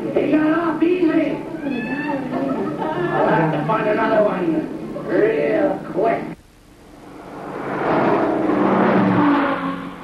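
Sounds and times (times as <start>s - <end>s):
wavering voice through tv speaker: 0.0s - 6.4s.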